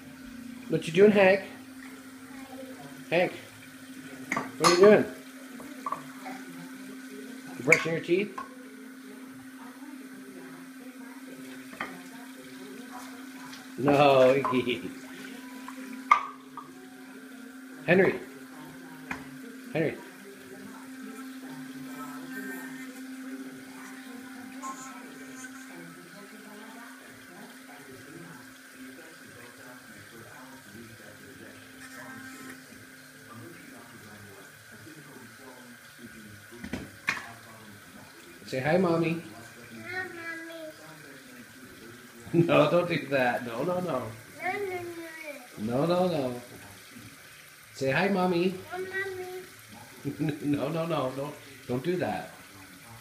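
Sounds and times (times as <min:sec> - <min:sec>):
electric toothbrush motor humming: 0:00.0 - 0:53.0
water running from sink tap: 0:00.0 - 0:53.0.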